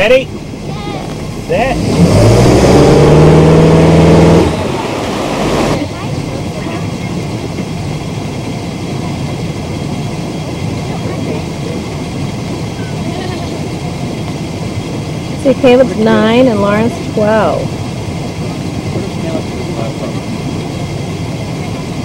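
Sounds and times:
boat engine running hard: 0.0 - 22.0
steady engine hum: 0.0 - 22.0
water rushing: 0.0 - 22.0.

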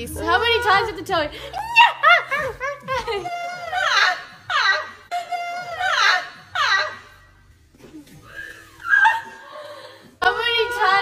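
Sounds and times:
woman laughing with squeals: 1.5 - 7.2, 8.3 - 9.7.

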